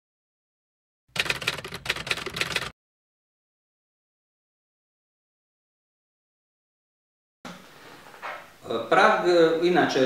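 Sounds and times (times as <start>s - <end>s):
typewriter keys clacking: 1.2s - 2.7s.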